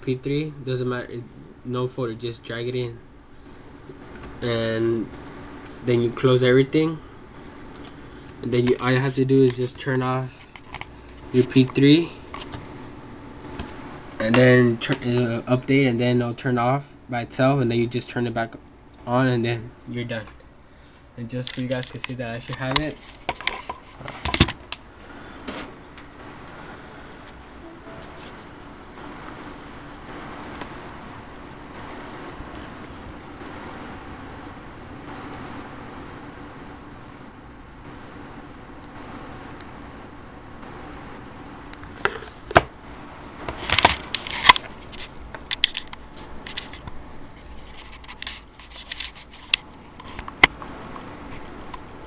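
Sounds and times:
room noise: 0:00.0 - 0:52.0.

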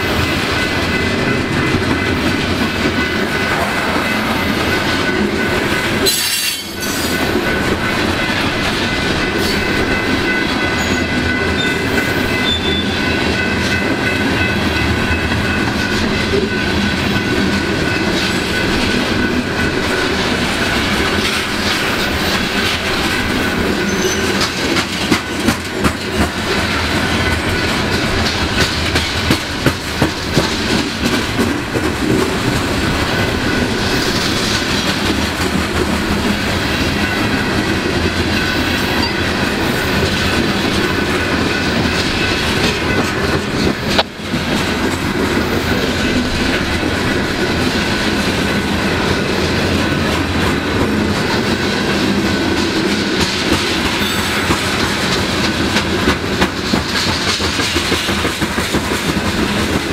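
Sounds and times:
train wheels rumbling on rail: 0:00.0 - 0:59.9
wheels clacking over rail joints: 0:00.0 - 0:59.9.

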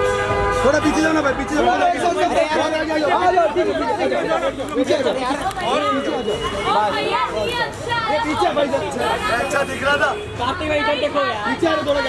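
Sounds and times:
men talking and calling out: 0:00.2 - 0:12.0.

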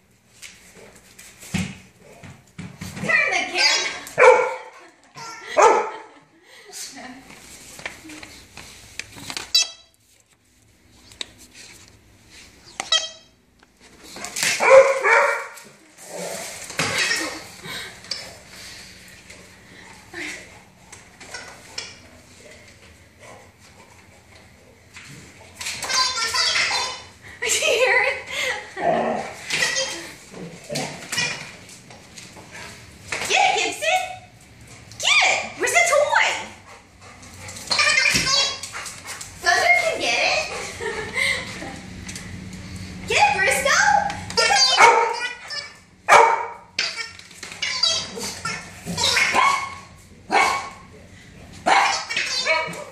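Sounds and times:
dog barking: 0:04.2 - 0:04.7, 0:05.6 - 0:06.0, 0:14.6 - 0:15.6, 0:44.8 - 0:45.2, 0:46.1 - 0:46.7, 0:49.2 - 0:50.8, 0:51.7 - 0:52.8.

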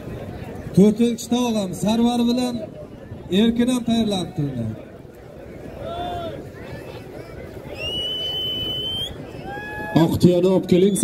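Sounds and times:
murmur of crowd: 0:00.0 - 0:11.0
high whistle: 0:07.8 - 0:09.2.

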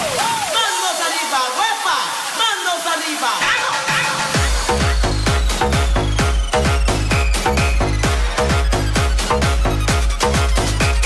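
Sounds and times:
loud steady hiss: 0:00.0 - 0:06.6.

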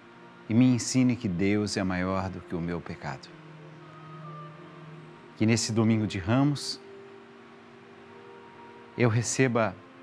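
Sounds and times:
soft sustained background chord: 0:00.0 - 0:10.0.

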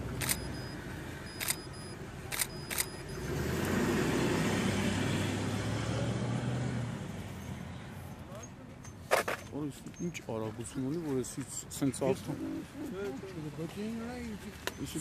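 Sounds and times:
camera shutter clicks: 0:00.2 - 0:00.5, 0:01.4 - 0:01.7, 0:02.3 - 0:03.0
car passing by: 0:02.4 - 0:08.2.

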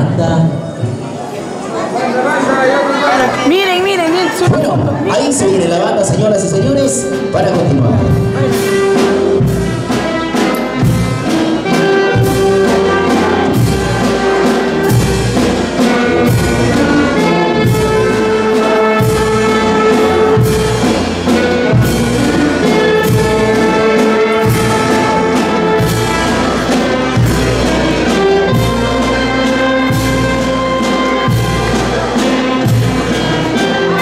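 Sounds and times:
brass band playing dance music: 0:01.4 - 0:34.0
trumpet and trombone notes: 0:02.5 - 0:34.0
steady percussion beat: 0:03.5 - 0:34.0.

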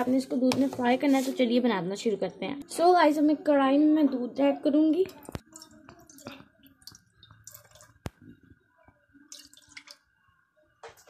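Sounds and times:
milk pouring and splashing: 0:05.1 - 0:08.5, 0:09.2 - 0:10.1.

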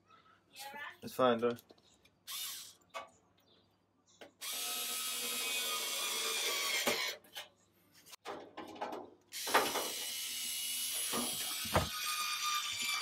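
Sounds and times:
electric screwdriver motor: 0:04.4 - 0:07.2.

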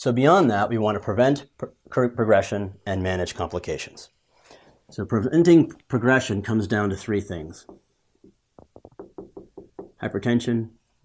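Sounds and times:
marker ticking on whiteboard: 0:07.7 - 0:10.0.

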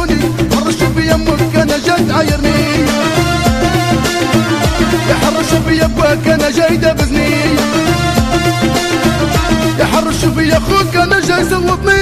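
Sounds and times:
percussion beat: 0:00.0 - 0:12.0.

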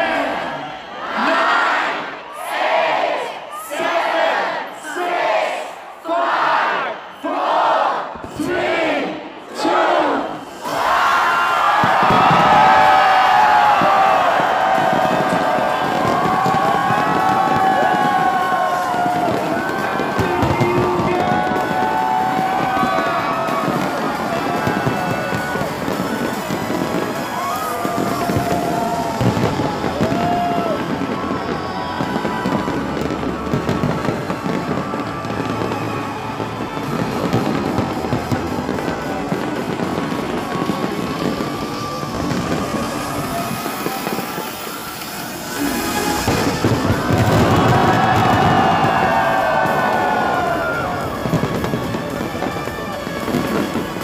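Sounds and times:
crowd cheering and screaming: 0:00.0 - 0:54.0
fireworks booming and crackling: 0:10.4 - 0:54.0.

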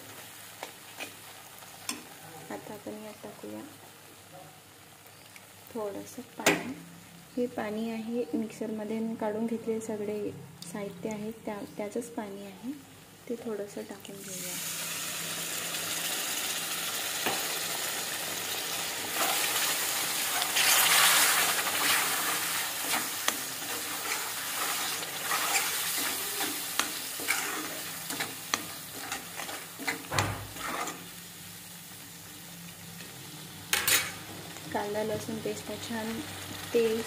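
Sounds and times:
water sizzling in a hot wok: 0:00.0 - 0:10.0, 0:11.3 - 0:37.0
steel spoon scraping a pan: 0:00.9 - 0:01.2, 0:19.1 - 0:31.1, 0:33.7 - 0:34.2.

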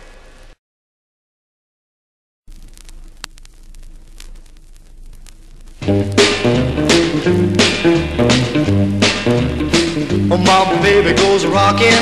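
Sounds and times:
low steady hum: 0:02.5 - 0:09.0
sharp record clicks: 0:02.5 - 0:09.1
vinyl surface hiss and crackle: 0:02.5 - 0:12.0.

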